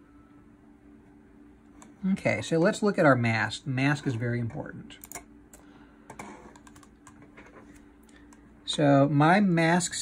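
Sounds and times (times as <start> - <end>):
low steady hum: 0.0 - 10.0
laptop clicking: 6.5 - 7.2.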